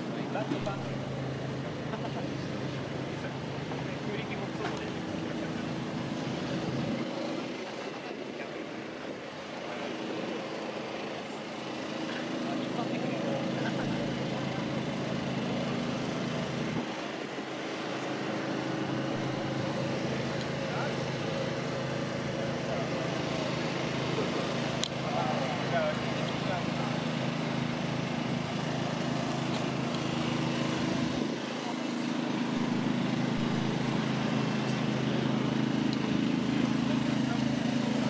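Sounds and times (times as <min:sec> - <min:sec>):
low mechanical hum: 0:00.0 - 0:38.0.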